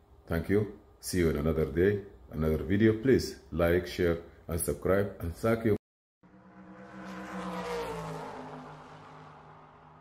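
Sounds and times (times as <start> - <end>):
droning pitched tone: 6.2 - 10.0.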